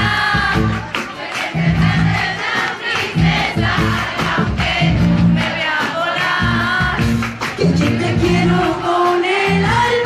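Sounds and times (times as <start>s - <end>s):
crowd singing along: 0.0s - 10.0s
live band music: 0.0s - 10.0s.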